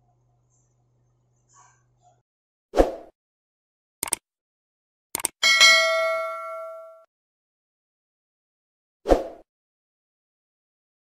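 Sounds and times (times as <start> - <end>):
double mouse click: 4.0 - 4.2, 5.2 - 5.4
notification bell ding: 5.4 - 7.1.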